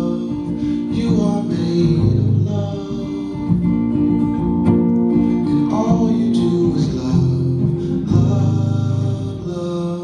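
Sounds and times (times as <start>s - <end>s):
man singing long notes: 0.0s - 3.7s, 5.6s - 10.0s.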